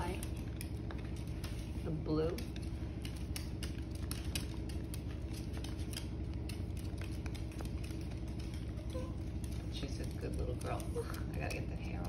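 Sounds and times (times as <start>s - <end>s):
dog teeth clicking on bone: 0.0s - 1.6s, 2.2s - 12.0s
low steady hum: 0.0s - 12.0s.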